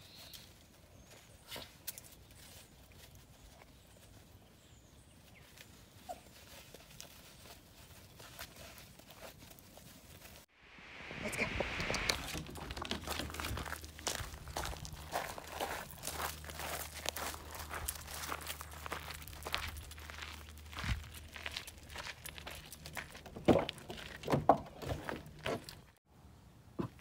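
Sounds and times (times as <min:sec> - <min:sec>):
footsteps crunching on gravel: 0:11.6 - 0:26.0.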